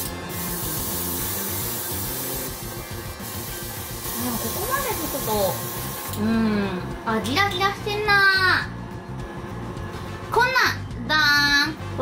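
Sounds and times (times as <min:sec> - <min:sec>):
airbrush spraying hiss: 0:00.0 - 0:06.2.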